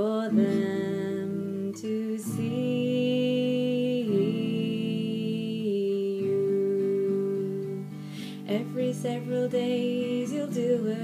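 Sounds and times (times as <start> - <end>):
acoustic guitar: 0.0 - 11.0
woman singing: 0.0 - 11.0.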